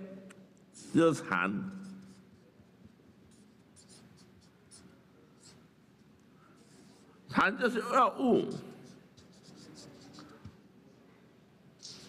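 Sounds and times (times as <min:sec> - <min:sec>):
man speaking: 0:00.8 - 0:01.9, 0:07.3 - 0:08.9
felt-tip marker scratching on paper: 0:01.7 - 0:05.7, 0:06.6 - 0:07.2, 0:08.7 - 0:10.6, 0:11.8 - 0:12.0.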